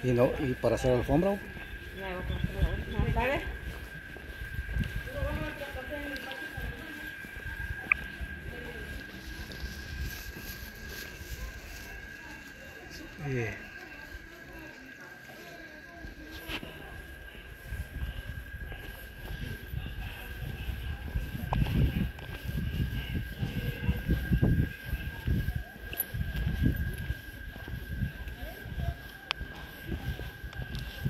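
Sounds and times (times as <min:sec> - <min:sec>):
faint indistinct voices: 0:00.0 - 0:31.0
steady high-pitched whine: 0:00.0 - 0:31.0
low rumbling on microphone: 0:16.6 - 0:31.0.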